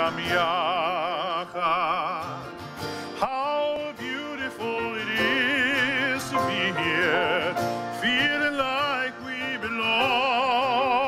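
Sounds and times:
man singing with vibrato: 0:00.0 - 0:11.0
strummed acoustic guitar: 0:00.0 - 0:11.0.

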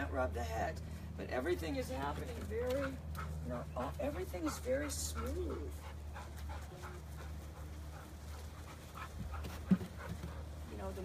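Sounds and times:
dog panting: 0:02.4 - 0:10.6.

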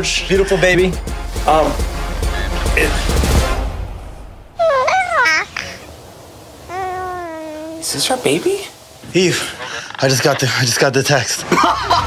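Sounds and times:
baby babbling: 0:04.6 - 0:05.9, 0:06.7 - 0:08.0.

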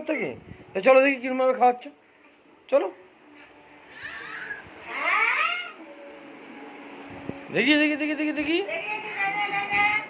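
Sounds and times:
high-pitched cries: 0:03.9 - 0:05.9.

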